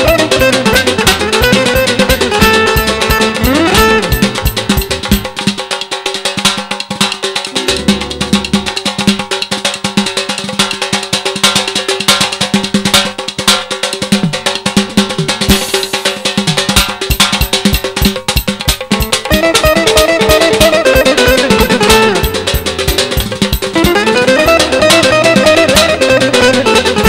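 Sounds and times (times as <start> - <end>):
electronic drum kit: 0.0 - 5.8, 6.6 - 10.2, 14.1 - 27.0
frame drum: 0.0 - 27.0
nagara drum: 0.0 - 27.0.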